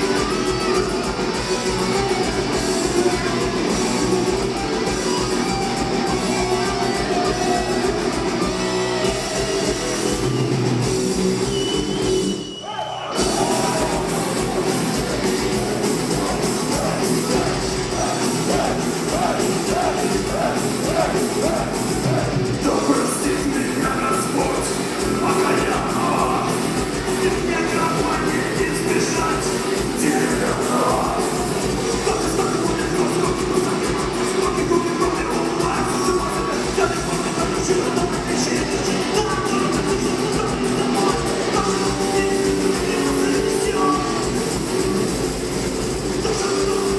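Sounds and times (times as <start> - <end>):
distorted electric guitar: 0.0 - 12.4, 13.1 - 46.9
drum kit: 0.0 - 12.5, 13.1 - 46.9.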